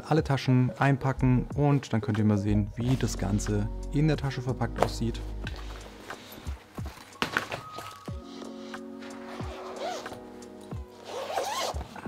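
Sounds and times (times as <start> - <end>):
background music with held notes: 0.0 - 12.0
fabric bag rustling and knocking: 4.8 - 8.4
gig bag zipper: 8.2 - 12.0.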